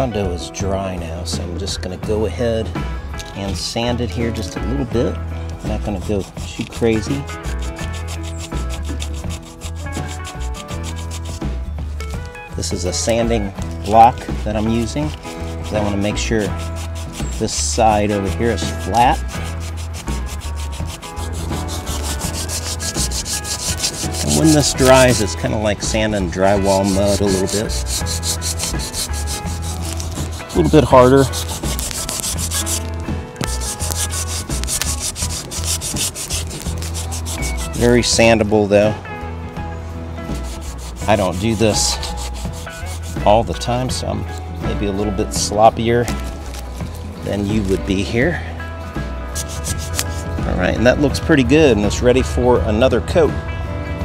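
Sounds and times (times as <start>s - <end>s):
sandpaper rubbing on filler: 5.6s - 11.5s, 13.7s - 38.2s, 40.3s - 45.0s, 47.2s - 47.8s, 49.3s - 50.3s.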